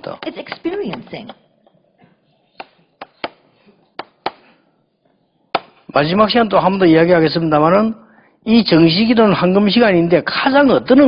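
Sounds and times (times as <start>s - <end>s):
chalk tapping on chalkboard: 2.6s - 3.4s, 4.0s - 4.5s.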